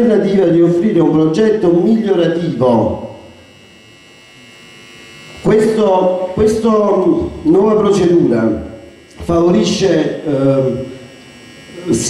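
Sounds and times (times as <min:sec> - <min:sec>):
man's amplified speech: 0:00.0 - 0:03.2, 0:05.4 - 0:10.9
electrical hum and buzz: 0:00.0 - 0:12.0
thin high whine: 0:00.0 - 0:12.0.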